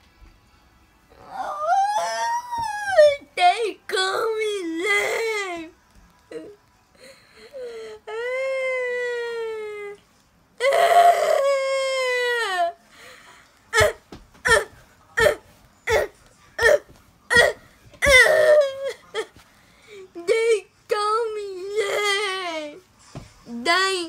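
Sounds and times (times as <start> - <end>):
person fake crying: 1.1 - 3.2, 10.6 - 12.8, 13.8 - 19.3.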